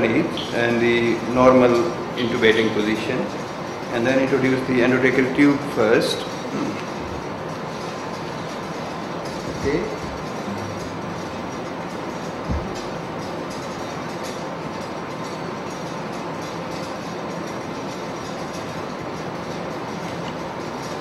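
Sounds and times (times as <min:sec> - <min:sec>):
steady background hiss: 0:00.0 - 0:21.0.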